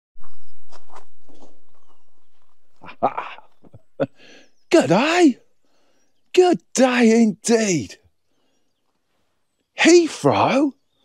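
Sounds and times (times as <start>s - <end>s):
faint bird chirps: 0.2s - 7.1s, 7.7s - 11.0s.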